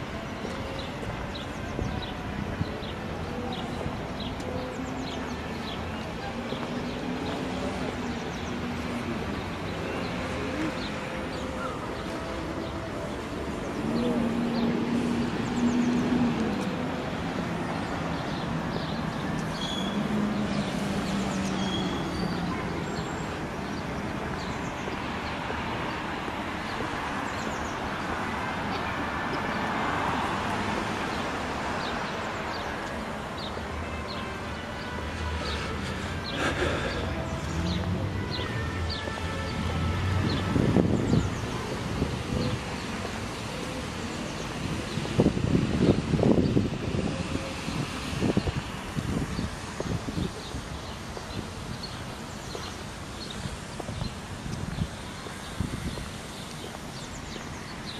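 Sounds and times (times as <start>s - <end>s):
passers-by talking: 0.0s - 48.4s
traffic noise: 0.0s - 57.9s.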